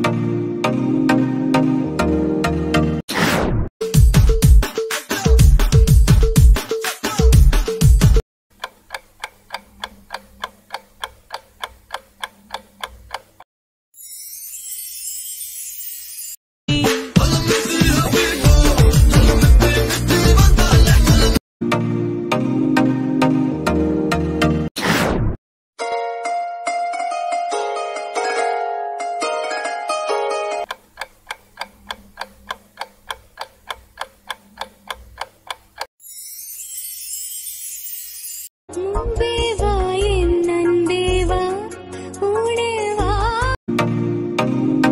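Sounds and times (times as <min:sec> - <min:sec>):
film song music with heavy bass: 0:00.0 - 0:03.0, 0:03.8 - 0:08.2, 0:16.7 - 0:24.7, 0:38.7 - 0:44.9
countdown timer ticking: 0:30.6 - 0:35.9.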